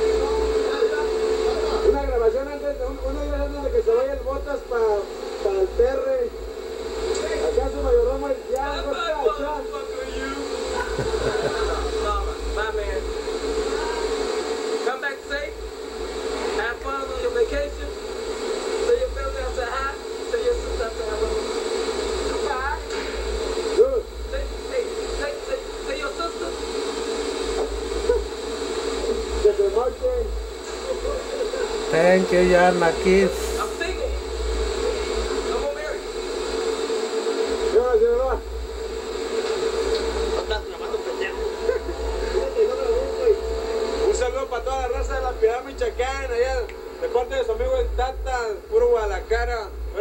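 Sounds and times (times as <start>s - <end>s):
factory machinery hum: 0.0s - 30.8s, 31.8s - 37.6s
indistinct voices talking: 31.8s - 33.8s.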